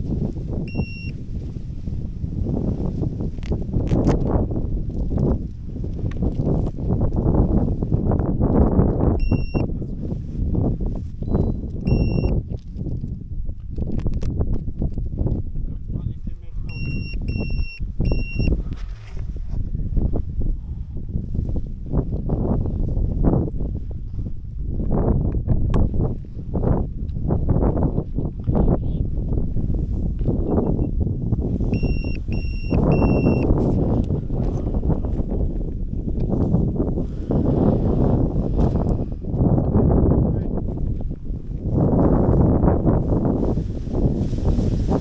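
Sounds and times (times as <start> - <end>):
wind buffeting microphone: 0.0 - 45.0
short electronic beep: 0.7 - 1.1, 9.2 - 9.7, 11.2 - 12.3, 16.7 - 18.5, 31.8 - 33.5.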